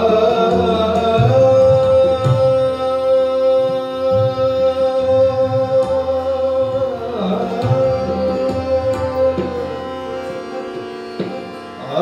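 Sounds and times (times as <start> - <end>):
harmonium: 0.0 - 12.0
tabla strokes: 0.0 - 12.0
tanpura drone: 0.0 - 12.0.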